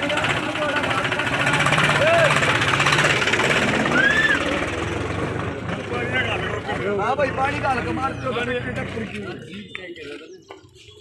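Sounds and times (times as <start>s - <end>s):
diesel tractor engine knocking: 0.0s - 9.5s
crowd shouting: 1.3s - 2.8s, 3.5s - 5.0s.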